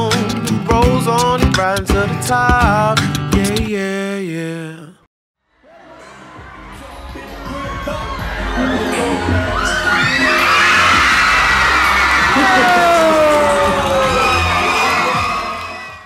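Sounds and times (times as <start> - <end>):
large crowd cheering and shouting: 5.5 - 16.0
long falling shout: 7.5 - 16.0.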